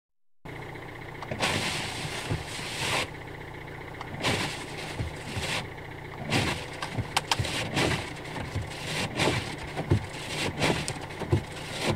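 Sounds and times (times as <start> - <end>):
car engine idling: 0.5 - 11.9
wipers scraping snow off glass: 1.3 - 3.1, 4.1 - 11.9.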